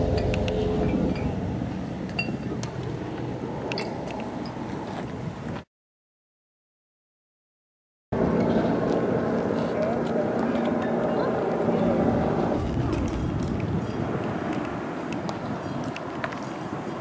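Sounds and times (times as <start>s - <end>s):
vehicle engines running: 0.0s - 4.9s, 8.2s - 17.0s.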